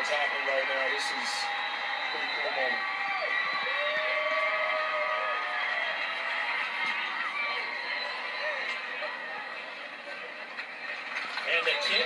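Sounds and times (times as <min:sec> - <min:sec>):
indistinct voices from tv: 0:00.0 - 0:12.0
stadium crowd noise on tv: 0:00.0 - 0:12.0.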